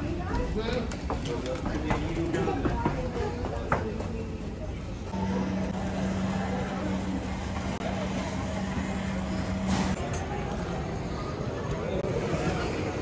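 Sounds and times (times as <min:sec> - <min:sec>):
low machine hum: 0:04.9 - 0:13.0.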